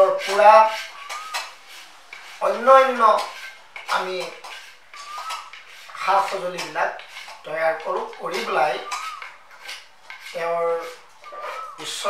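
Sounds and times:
bowls and sticks clattering on tiles: 0:02.2 - 0:11.7.

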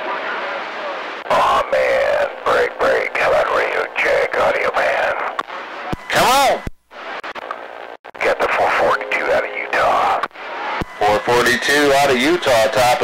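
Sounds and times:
radio static: 0:00.1 - 0:13.0
voice over radio: 0:01.3 - 0:05.4, 0:06.0 - 0:06.7, 0:08.2 - 0:10.3, 0:11.0 - 0:13.0.

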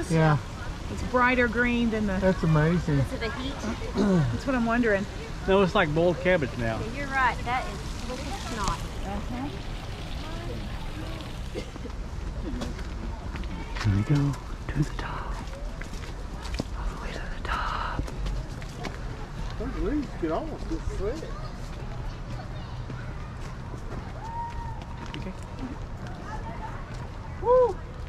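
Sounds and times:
hot spring water trickling: 0:00.0 - 0:21.6
faint voices: 0:00.0 - 0:28.0
footsteps on paved path: 0:07.1 - 0:09.8, 0:11.3 - 0:28.0.

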